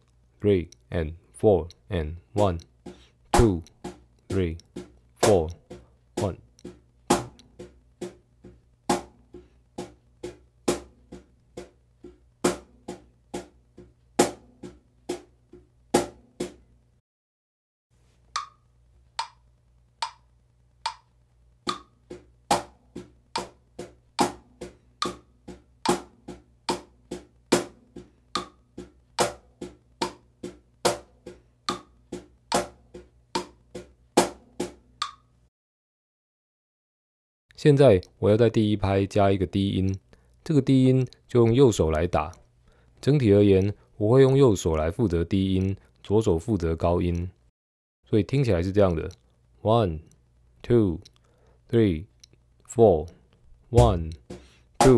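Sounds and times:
cajon struck by hand: 6.7s - 9.2s, 22.5s - 26.9s, 27.5s - 31.1s, 31.7s - 32.8s, 33.4s - 34.8s
metronome click: 18.4s - 18.6s, 19.2s - 19.4s, 35.0s - 35.3s.

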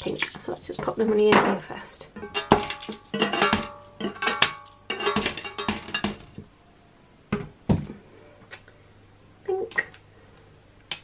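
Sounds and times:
coins clinking into a tub: 2.2s - 6.4s.

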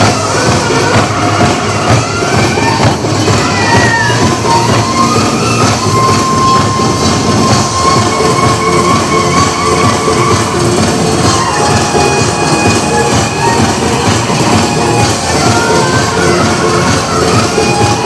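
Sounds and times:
drum and metal percussion: 0.0s - 18.0s.

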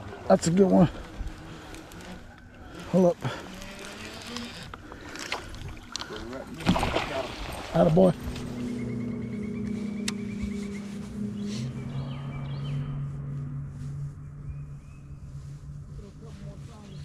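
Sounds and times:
boat motor hum: 0.0s - 17.0s
bird chirping: 8.2s - 17.0s.

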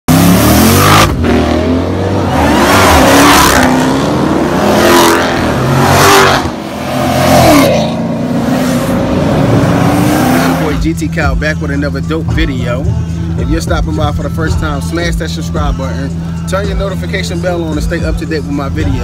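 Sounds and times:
car engines revving: 0.1s - 19.0s.

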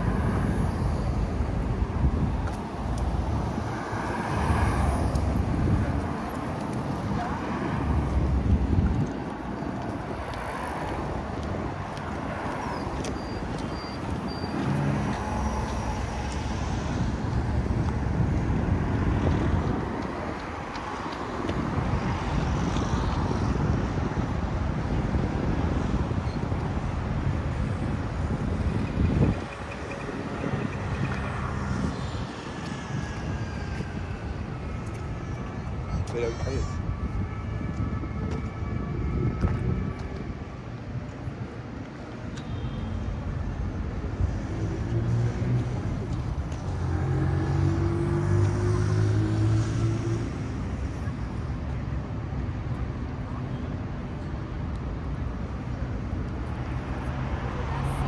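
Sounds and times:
bus passing: 0.0s - 42.3s, 43.0s - 58.0s
car engines and tyre noise: 0.0s - 58.0s
voices of passersby: 0.0s - 58.0s.

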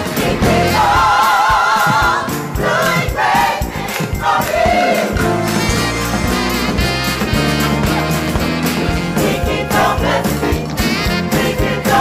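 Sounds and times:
gospel choir singing: 0.0s - 6.6s, 7.8s - 12.0s
drum kit: 0.0s - 12.0s
electric bass: 5.2s - 12.0s.

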